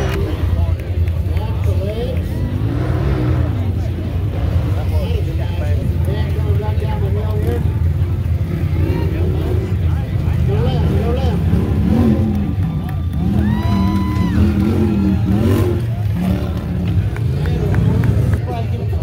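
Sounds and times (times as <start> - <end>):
engines rumbling: 0.0 - 19.0
people talking: 0.0 - 19.0.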